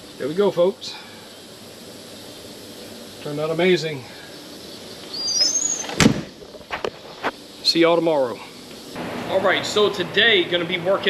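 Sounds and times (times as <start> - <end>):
high rising chirp: 0.0 - 6.1
truck door slamming: 5.8 - 6.4.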